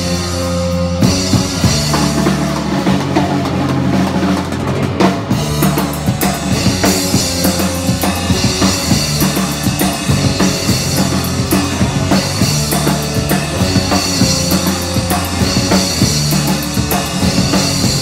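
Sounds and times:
live punk band playing: 0.0s - 18.0s
loud drum kit: 0.0s - 18.0s.

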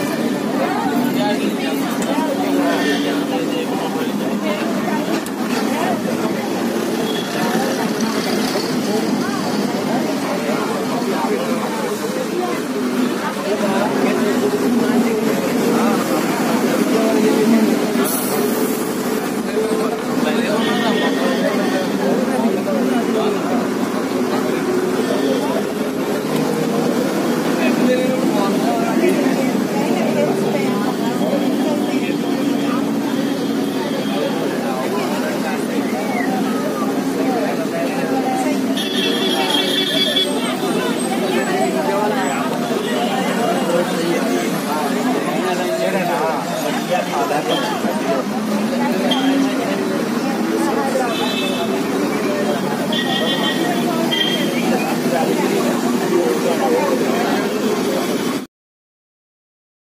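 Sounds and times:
bus engine hum: 0.0s - 45.4s
passengers chattering: 0.0s - 58.5s
road noise: 0.0s - 58.5s.

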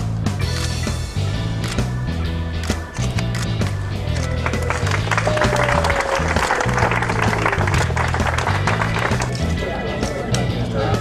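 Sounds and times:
background music with bass line: 0.0s - 11.0s
crowd applauding: 4.0s - 9.6s.

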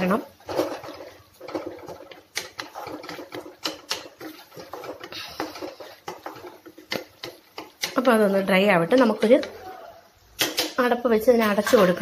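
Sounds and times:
spoon scraping a metal pan: 0.0s - 9.7s.

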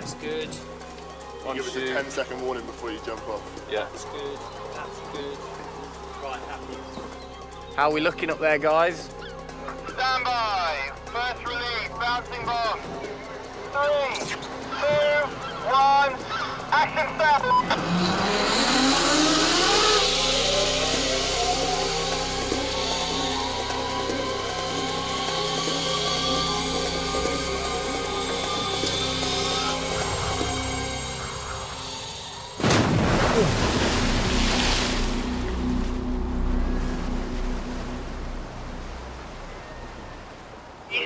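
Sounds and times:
background music: 0.0s - 41.0s
churning water: 0.0s - 41.0s
zip-line trolley whine: 17.4s - 32.7s
loud splash: 32.6s - 36.0s.

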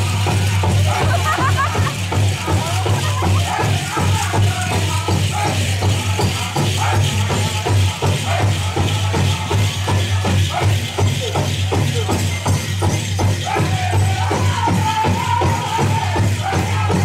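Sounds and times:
drum fast steady beat: 0.0s - 17.0s
group singing: 0.0s - 17.0s.

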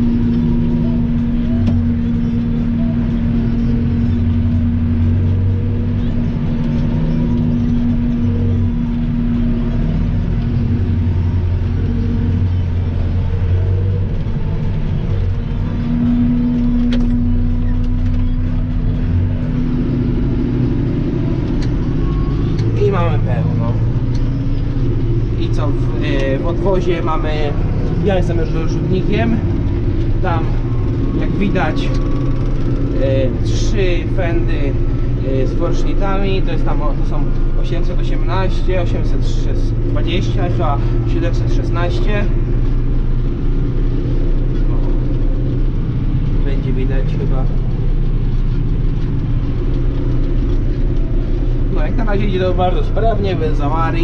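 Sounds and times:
tractor engine running under load: 0.0s - 54.0s.

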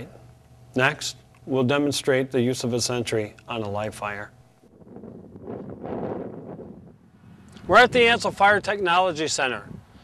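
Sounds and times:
wind on microphone: 4.7s - 10.0s.

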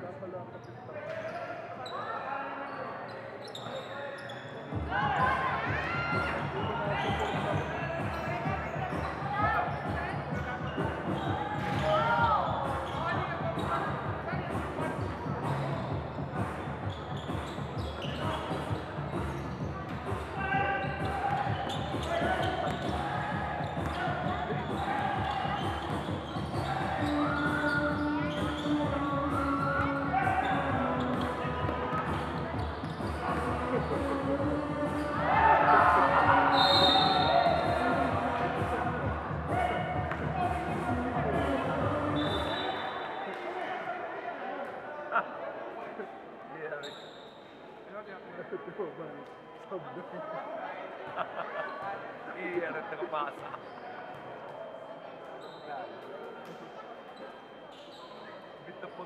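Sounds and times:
voices calling out in echoing hall: 0.0s - 59.0s.

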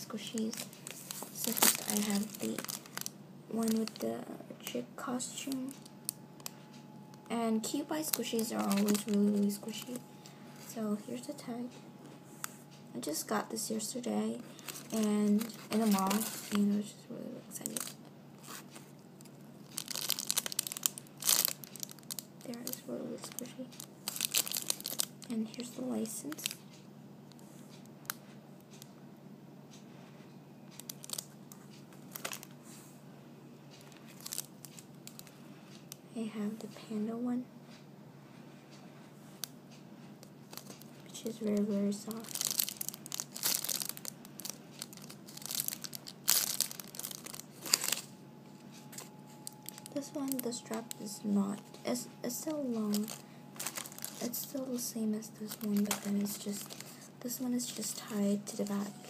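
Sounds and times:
plastic bag crinkling: 0.0s - 6.6s, 7.4s - 11.4s, 14.4s - 16.8s, 17.5s - 26.6s, 30.7s - 31.3s, 32.0s - 32.6s, 33.8s - 35.4s, 40.2s - 59.0s.

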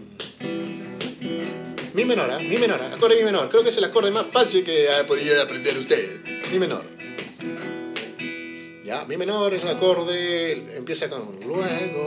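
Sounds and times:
acoustic guitar strums: 0.0s - 12.0s.

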